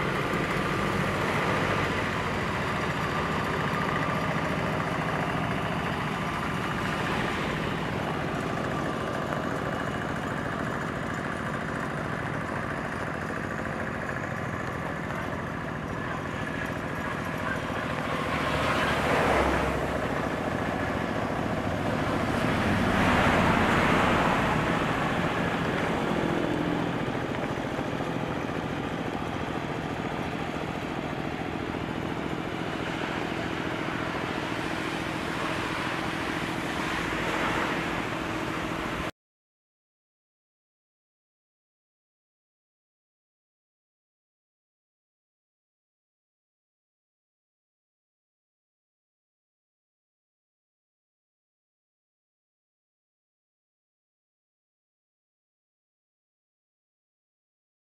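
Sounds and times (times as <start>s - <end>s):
tractor engine running under load: 0.0s - 39.1s.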